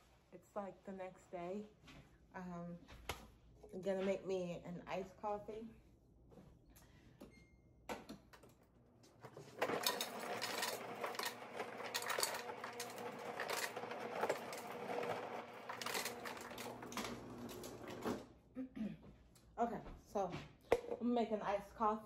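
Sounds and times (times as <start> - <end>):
ice clattering into a cup: 9.3 - 18.2.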